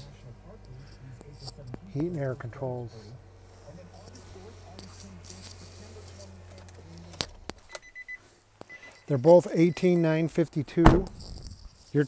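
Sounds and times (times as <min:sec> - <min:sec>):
high electronic beep: 0:07.7 - 0:10.2
low cabin hum: 0:09.9 - 0:11.8.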